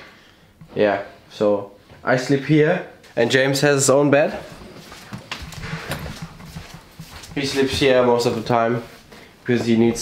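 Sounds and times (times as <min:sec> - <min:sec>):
footsteps on tiled floor: 0:04.1 - 0:10.0.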